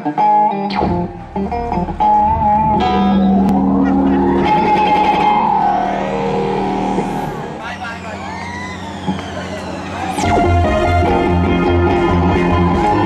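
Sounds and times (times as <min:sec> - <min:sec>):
electric guitar sliding notes: 0:00.0 - 0:07.7, 0:08.4 - 0:13.0
sweeping synth tone: 0:00.6 - 0:12.2.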